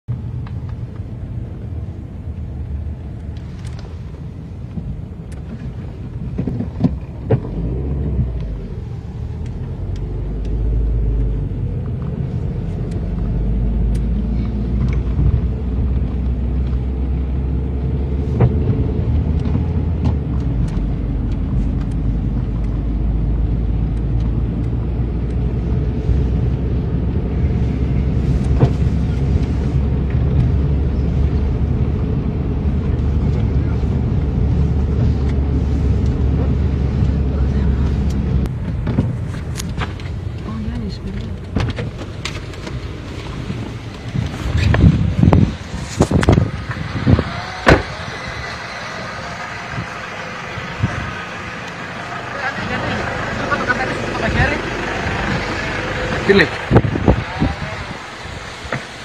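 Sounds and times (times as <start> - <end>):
car engine and tyres rumbling: 0.0 - 59.0.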